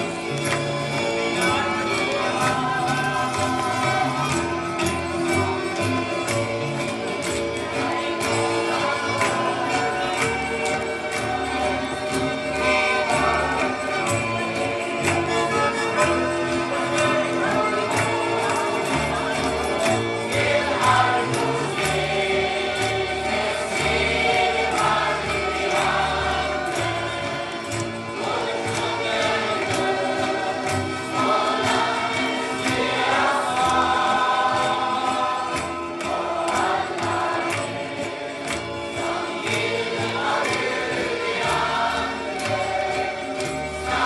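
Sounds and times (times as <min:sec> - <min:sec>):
choir singing a hymn: 0:00.0 - 0:44.0
musical accompaniment: 0:00.0 - 0:44.0.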